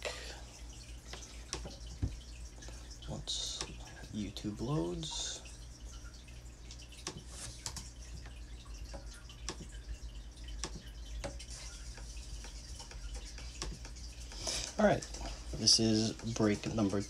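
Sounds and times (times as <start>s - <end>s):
steady low hum: 0.0s - 17.0s
small clicks and taps: 1.1s - 2.8s, 6.7s - 9.8s, 10.5s - 14.4s.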